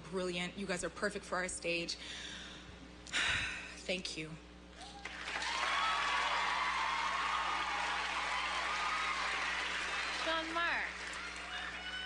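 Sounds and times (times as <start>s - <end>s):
audience applauding and cheering: 4.8s - 12.0s.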